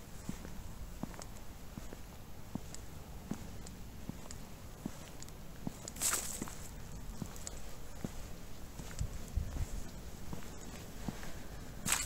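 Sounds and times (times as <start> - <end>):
footsteps on a path: 0.0 - 12.0
rustle: 3.4 - 12.0.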